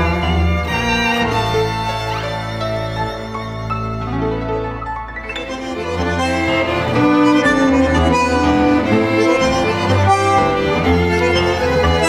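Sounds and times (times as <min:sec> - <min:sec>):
tango ensemble playing: 0:00.0 - 0:12.0.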